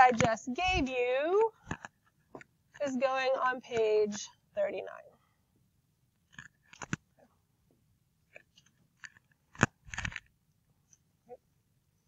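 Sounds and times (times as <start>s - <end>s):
handling clicks and crinkles: 6.2s - 7.1s, 8.3s - 10.3s.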